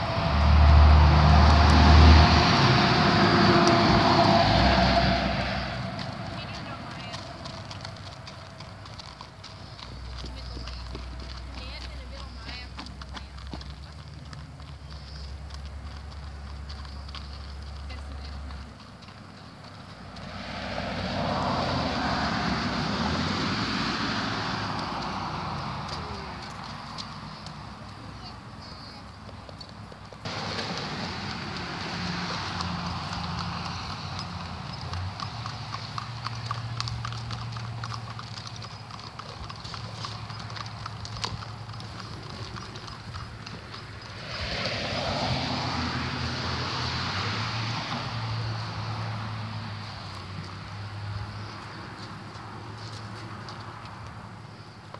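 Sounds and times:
broad rushing noise: 0:00.0 - 0:08.3, 0:30.2 - 0:34.6, 0:43.8 - 0:49.8
horse hooves on gravel: 0:00.0 - 0:47.0, 0:47.7 - 0:54.9.

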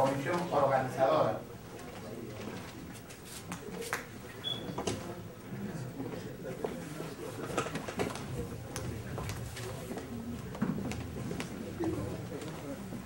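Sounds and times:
murmur of people talking: 0:00.0 - 0:13.0.

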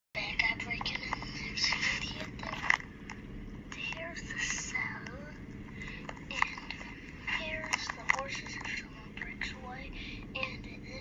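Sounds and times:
low hum: 0:00.2 - 0:11.0.

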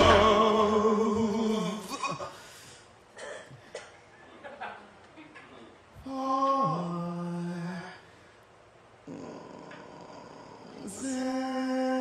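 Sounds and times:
man singing sliding note: 0:00.0 - 0:01.9.

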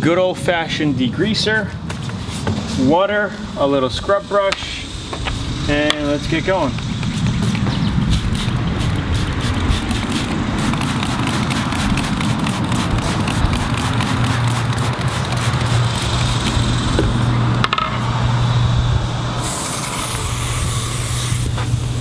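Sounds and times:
steady low hum: 0:00.0 - 0:22.0
spray bottle squirts: 0:07.0 - 0:16.6, 0:19.4 - 0:22.0
hose nozzle water hiss: 0:19.4 - 0:22.0.

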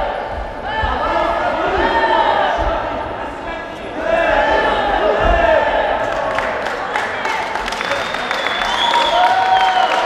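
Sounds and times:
dull low thuds: 0:00.0 - 0:03.2, 0:04.3 - 0:05.8.

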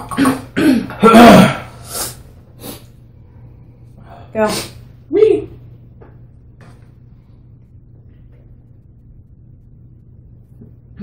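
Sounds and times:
faint steady low hum: 0:00.0 - 0:11.0
sniff through the nose: 0:01.8 - 0:02.9.

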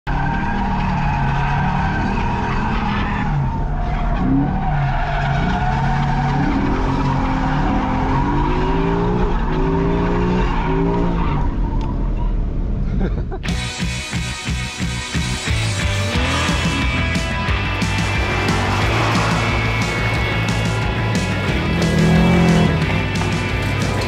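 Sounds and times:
car engine revving: 0:00.1 - 0:12.8, 0:13.6 - 0:24.0.

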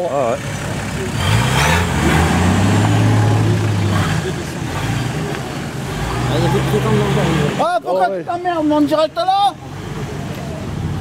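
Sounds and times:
off-road vehicle engine revving: 0:00.0 - 0:07.8.

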